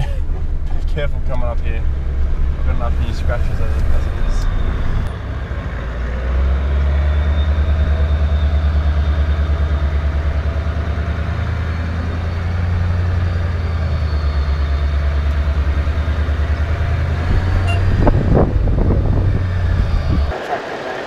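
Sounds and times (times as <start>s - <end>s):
car engine running at low revs: 0.0s - 21.0s.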